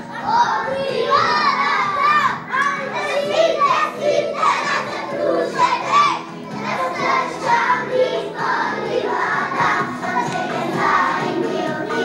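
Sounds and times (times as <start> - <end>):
children shouting: 0.0 - 12.0.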